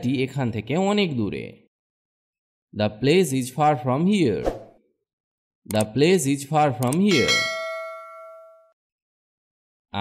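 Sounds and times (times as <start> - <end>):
bell-like chime: 7.1 - 8.8.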